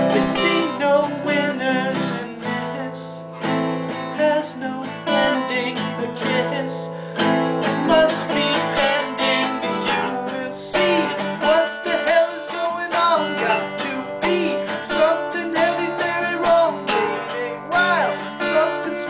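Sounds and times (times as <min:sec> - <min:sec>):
strummed guitar: 0:00.0 - 0:19.0.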